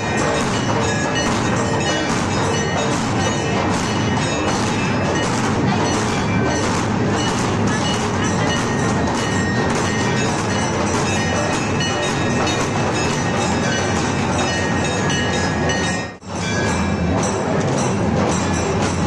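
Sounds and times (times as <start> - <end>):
dense crowd din: 0.0 - 19.0
drums beating: 0.0 - 19.0.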